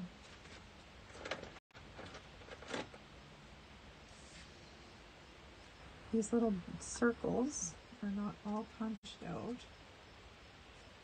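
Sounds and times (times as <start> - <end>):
paper rustling: 0.2 - 3.0.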